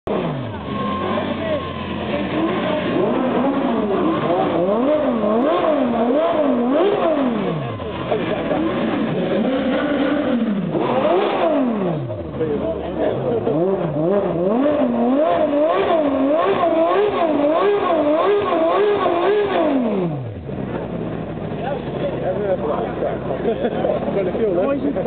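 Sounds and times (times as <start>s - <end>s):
crowd voices: 0.1s - 25.0s
sports car engines revving: 0.1s - 25.0s.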